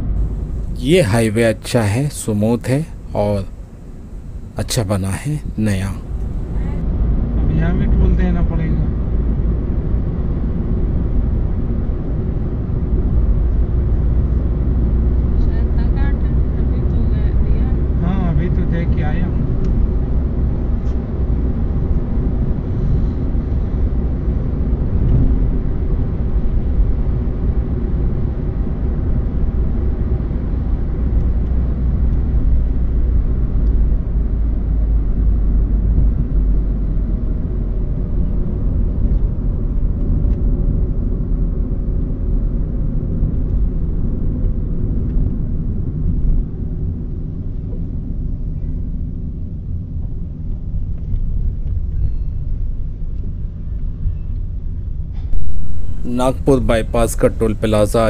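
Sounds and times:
car cabin road rumble: 0.0 - 9.0, 55.3 - 58.0.

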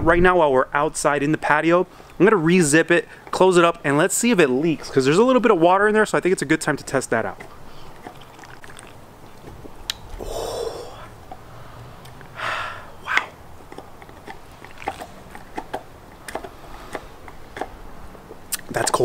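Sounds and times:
lip noise: 7.4 - 17.8, 18.4 - 18.8
man swallowing: 9.6 - 11.2, 12.5 - 13.4
breathy rushes through nose: 10.2 - 11.7, 12.4 - 13.4.

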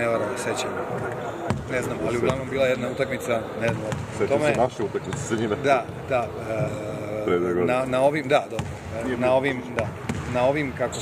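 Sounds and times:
man talking in echoing hall: 0.0 - 11.0
basketball bouncing: 0.9 - 2.5, 3.7 - 5.3, 8.6 - 9.1, 9.7 - 10.4.

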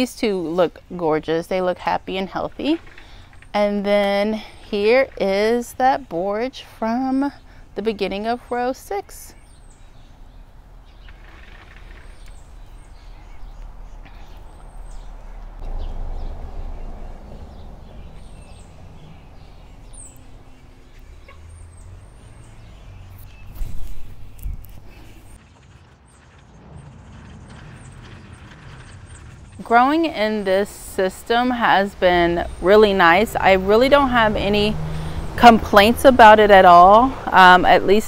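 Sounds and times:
low rumble: 9.8 - 32.3.

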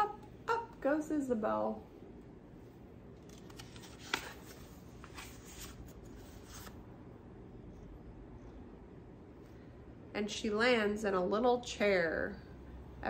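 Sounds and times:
book pages rustling: 3.1 - 6.8
page flicking: 3.2 - 5.8.

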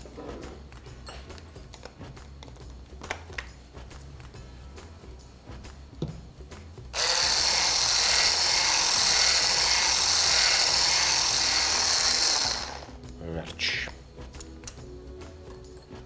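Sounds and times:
electric hand blender whisking: 7.0 - 12.9.

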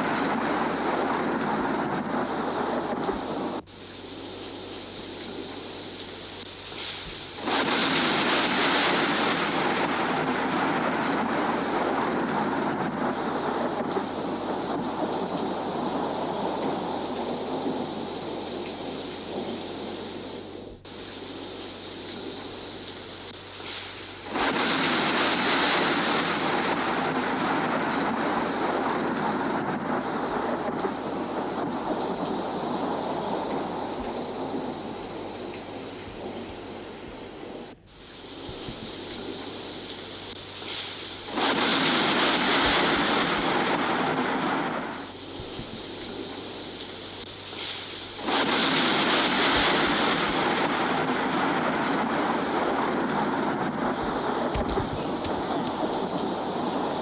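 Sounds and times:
thunder: 0.0 - 3.7, 6.8 - 21.0, 23.6 - 37.8, 38.4 - 57.0
rushing rain: 0.0 - 57.0.

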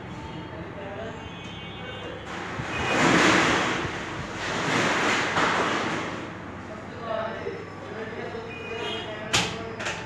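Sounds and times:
loud rushing noise: 2.3 - 6.6.

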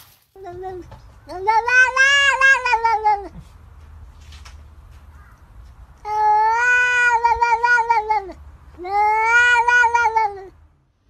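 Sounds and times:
cat meowing: 0.4 - 3.4, 6.0 - 10.6.

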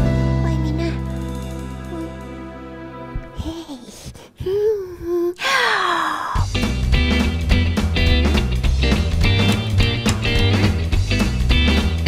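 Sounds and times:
band playing guitar and bass: 0.0 - 3.1, 6.4 - 12.0
woman gasping: 3.4 - 6.5.

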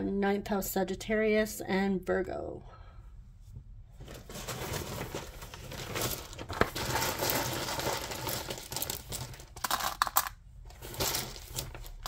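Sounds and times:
wooden tiles rattling: 4.3 - 12.0.

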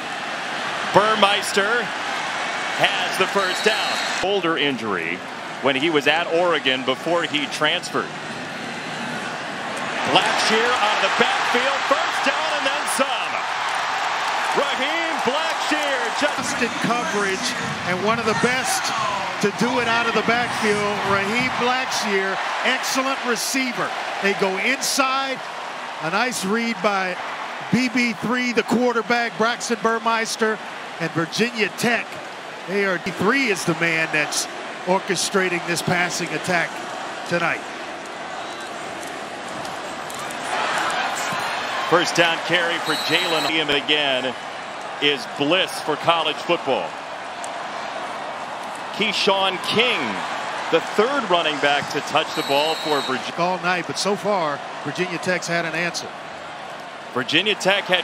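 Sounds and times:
stadium crowd cheering: 0.0 - 58.0
people shouting: 10.0 - 25.2.

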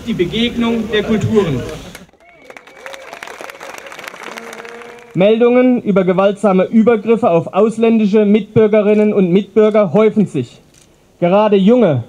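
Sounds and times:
crowd applauding: 1.2 - 5.2
plastic stadium horn: 2.4 - 5.2.

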